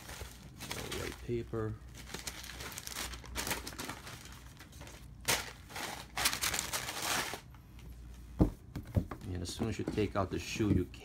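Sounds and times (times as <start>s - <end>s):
wrapping paper crinkling: 0.0s - 7.5s.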